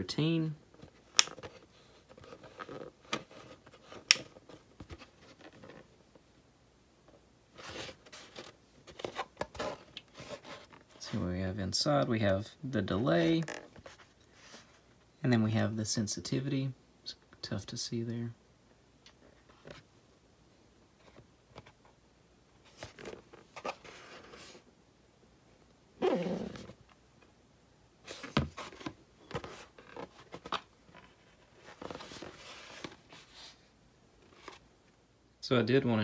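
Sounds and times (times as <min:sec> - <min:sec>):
plastic helmet rubbing and clicking: 0:00.7 - 0:06.0, 0:07.1 - 0:11.0, 0:22.7 - 0:24.6, 0:26.0 - 0:27.0, 0:28.1 - 0:33.6
plastic helmet knocking and rubbing: 0:28.2 - 0:33.1.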